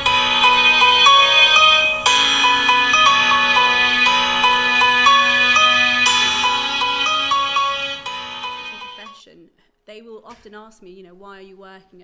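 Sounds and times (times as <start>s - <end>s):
melody of held notes: 0.0s - 9.2s.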